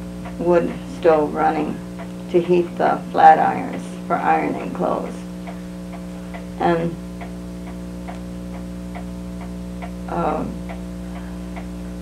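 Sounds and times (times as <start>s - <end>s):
clock ticking: 0.0s - 12.0s
electrical hum: 0.0s - 12.0s.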